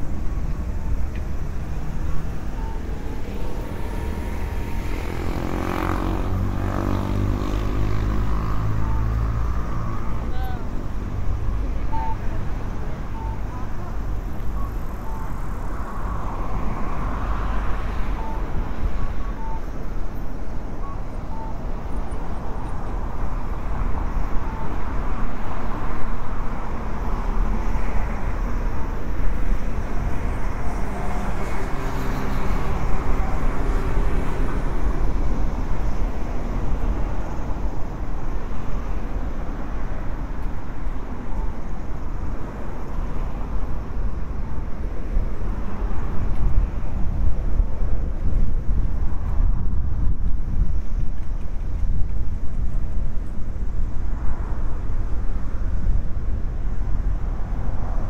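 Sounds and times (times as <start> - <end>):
traffic rumble: 0.0 - 58.0
vehicle passing close: 3.1 - 10.3.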